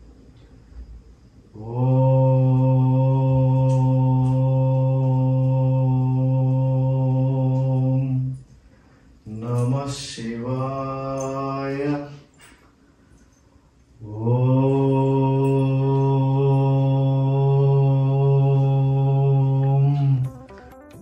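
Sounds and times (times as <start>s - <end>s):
man chanting a low note: 1.6s - 8.4s, 14.0s - 20.3s.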